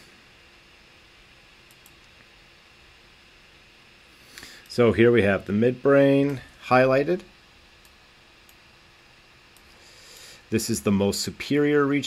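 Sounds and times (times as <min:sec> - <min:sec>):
steady low hiss: 0:00.0 - 0:12.0
computer mouse clicks: 0:01.7 - 0:02.2.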